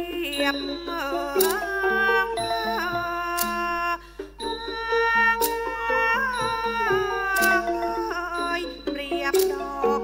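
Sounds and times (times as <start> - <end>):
nasal gliding melody: 0.0 - 10.0.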